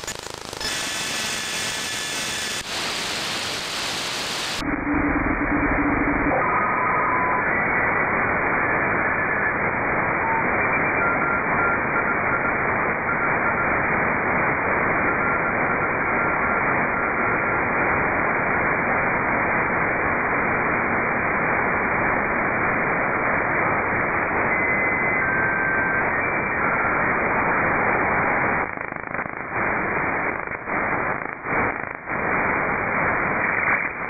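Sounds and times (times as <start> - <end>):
whistling radio carriers: 0.0 - 2.6, 4.6 - 16.4, 23.2 - 34.0
radio static hiss: 0.0 - 34.0.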